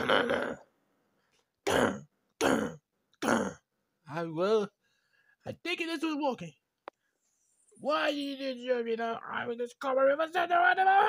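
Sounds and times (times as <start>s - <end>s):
person clearing throat: 0.0s - 0.7s, 1.6s - 3.7s.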